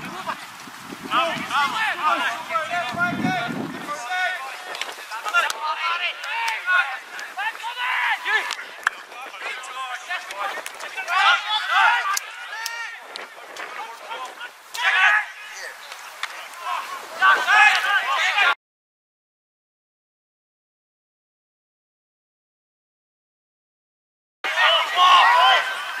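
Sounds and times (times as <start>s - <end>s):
people shouting: 0.0s - 18.6s, 24.4s - 26.0s.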